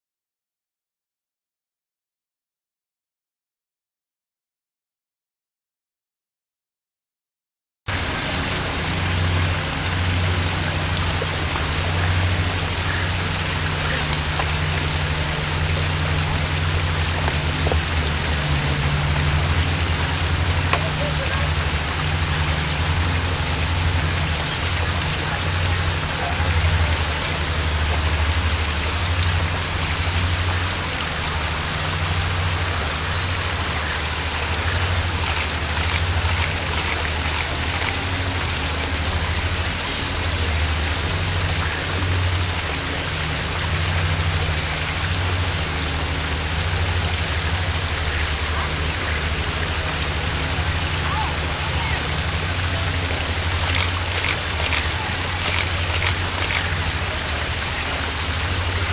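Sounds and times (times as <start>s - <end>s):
low uneven rumble: 7.9s - 58.9s
water rushing over rocks: 7.9s - 58.9s.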